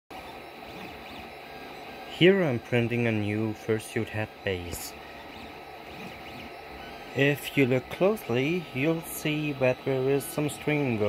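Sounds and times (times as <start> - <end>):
stepper motor whines: 0.1 - 11.0
fan hiss: 0.2 - 11.0.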